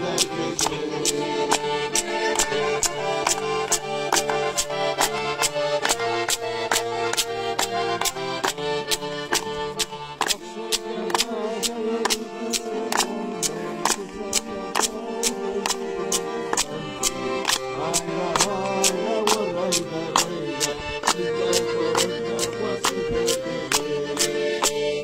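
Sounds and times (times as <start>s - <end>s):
accordion playing dance tune: 0.0s - 25.0s
hand claps: 0.0s - 25.0s
wooden clappers clacking: 0.1s - 24.8s.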